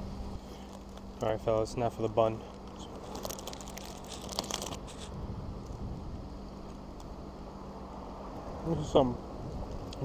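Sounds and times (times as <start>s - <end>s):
steady low hum: 0.0s - 10.0s
faint chewing: 2.4s - 5.8s
plastic wrapper crinkling: 2.5s - 5.8s.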